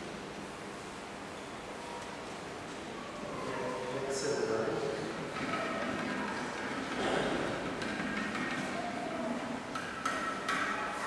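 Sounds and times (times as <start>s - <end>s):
sharp knocks: 5.4s - 8.9s, 9.7s - 10.9s.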